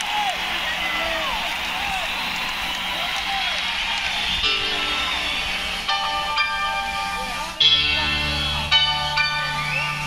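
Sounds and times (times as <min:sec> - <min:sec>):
arena crowd cheering: 0:00.0 - 0:06.4, 0:09.4 - 0:10.0.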